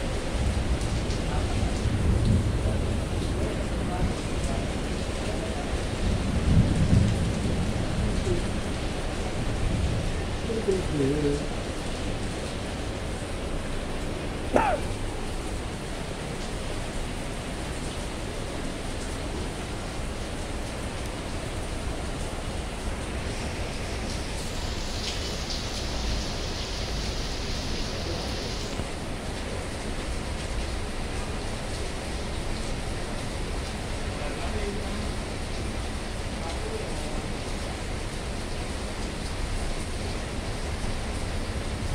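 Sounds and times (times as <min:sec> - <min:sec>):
heavy rain falling: 0:00.0 - 0:41.9
higher hiss: 0:23.2 - 0:28.9.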